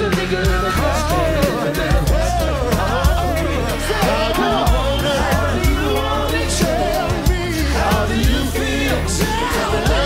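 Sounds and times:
live hip-hop music: 0.0 - 10.0
person singing: 0.0 - 10.0.

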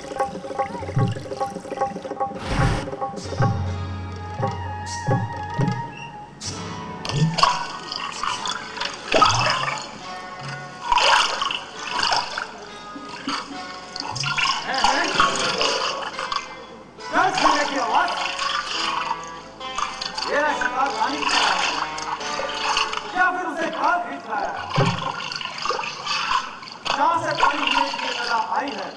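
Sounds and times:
running water: 0.0 - 3.0, 7.2 - 28.9
voice over music: 0.0 - 3.9, 11.1 - 19.1, 20.2 - 24.8
stage music: 0.0 - 25.2.

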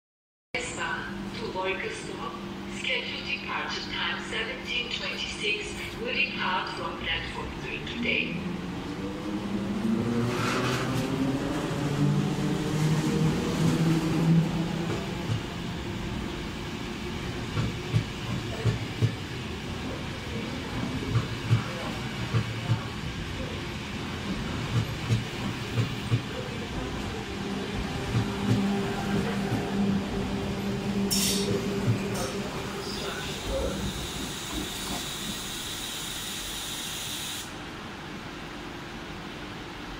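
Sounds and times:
train motor hum: 7.3 - 35.6.

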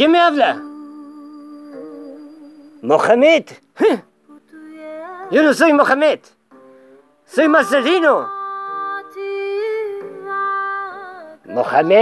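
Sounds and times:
soft held chord music: 0.0 - 12.0.

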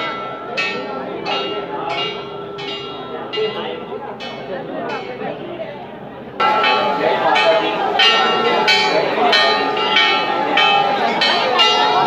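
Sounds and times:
metal bells struck: 0.0 - 5.3, 6.4 - 12.0
murmur of crowd: 0.0 - 12.0.

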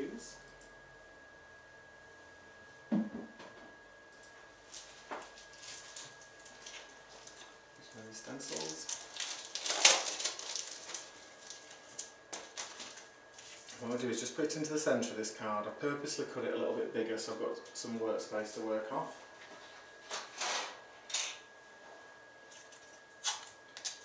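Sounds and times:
knock on craft mat: 2.9 - 3.5
plastic packaging crinkling: 4.8 - 7.5, 8.3 - 13.8.

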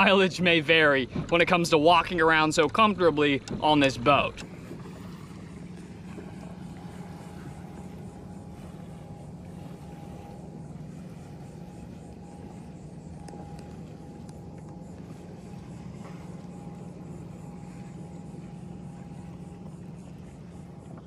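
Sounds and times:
low motor hum: 0.0 - 21.0
thin steady whine: 0.0 - 21.0
faint ticks: 9.5 - 21.0.

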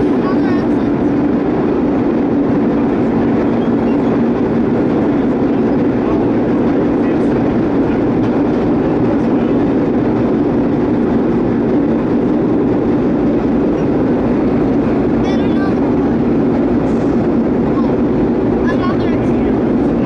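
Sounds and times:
subway train wheels rumbling on rail: 0.0 - 20.0.

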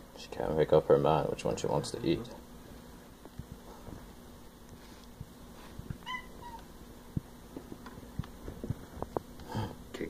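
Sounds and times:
cat meowing: 6.0 - 6.7
faint clicks and taps: 6.6 - 9.5.

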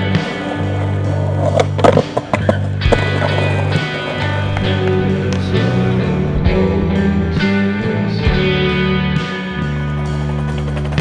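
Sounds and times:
skateboard rolling and scraping: 0.0 - 6.6, 9.1 - 11.0
rock music: 0.0 - 11.0
skateboard clacking on curb: 0.2 - 5.5.

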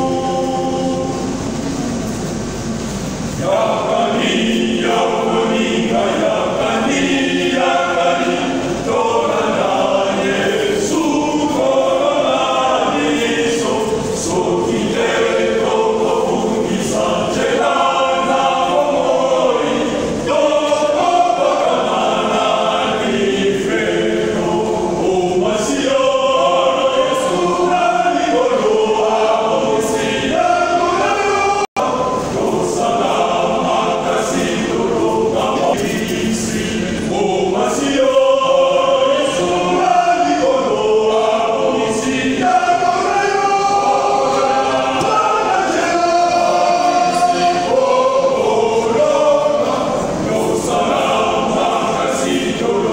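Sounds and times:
men's choir singing: 0.0 - 52.9.

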